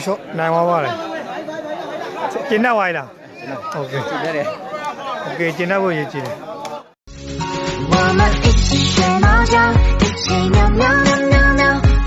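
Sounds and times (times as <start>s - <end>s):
crowd chatter: 0.0s - 7.0s
loud talking voices: 0.0s - 7.0s.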